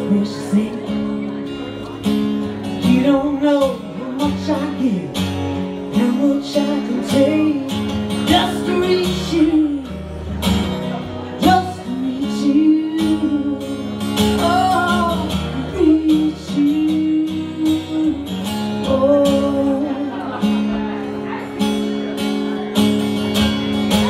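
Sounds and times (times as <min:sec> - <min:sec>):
acoustic guitar strumming: 0:00.0 - 0:24.0.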